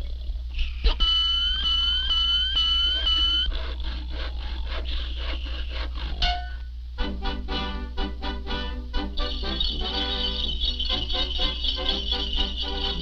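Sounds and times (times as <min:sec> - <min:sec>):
low soundtrack hum: 0:00.0 - 0:13.0
squeaky raspy strokes: 0:00.5 - 0:06.7, 0:09.0 - 0:13.0
shrill swooping whistle: 0:00.6 - 0:03.5, 0:09.0 - 0:13.0.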